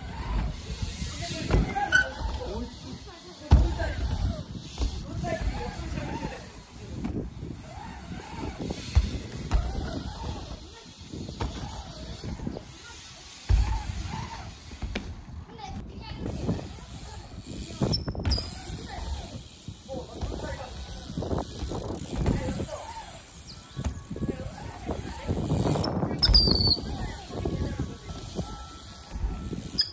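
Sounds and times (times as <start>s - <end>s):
bikes rolling on ramps: 0.0s - 29.9s
indistinct voices talking: 0.0s - 29.9s.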